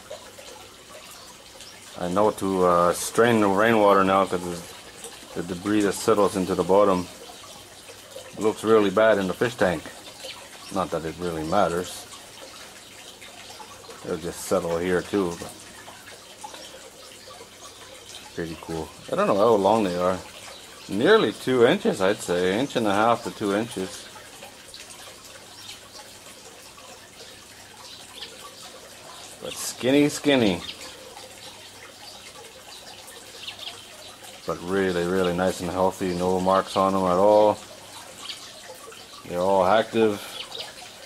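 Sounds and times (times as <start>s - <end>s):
water trickling into tank: 0.0s - 41.0s.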